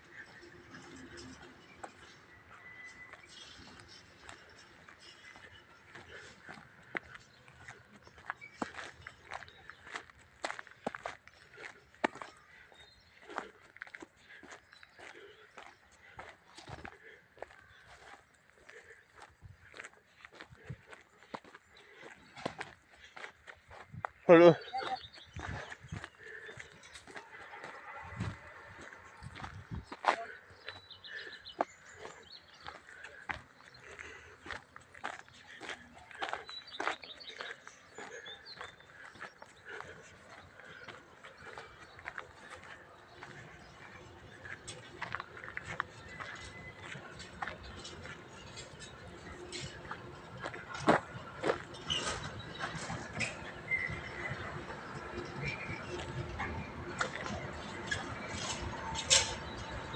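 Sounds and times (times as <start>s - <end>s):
footsteps on gravel: 0.0s - 59.9s
low train rumble: 42.8s - 59.9s.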